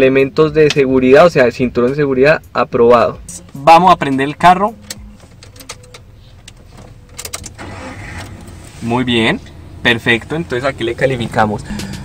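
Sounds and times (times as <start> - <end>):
low steady hum: 2.6 - 12.0
car engine running: 3.4 - 12.0.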